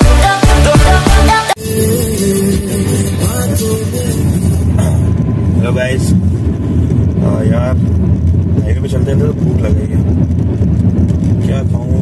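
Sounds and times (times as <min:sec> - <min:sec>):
man's voice: 0:01.6 - 0:06.2, 0:11.4 - 0:12.0
road and engine rumble in car: 0:01.6 - 0:12.0.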